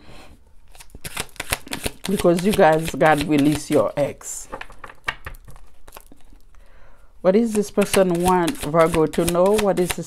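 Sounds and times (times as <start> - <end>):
cards shuffling with crisp clicks: 0.7 - 6.6, 7.5 - 10.0.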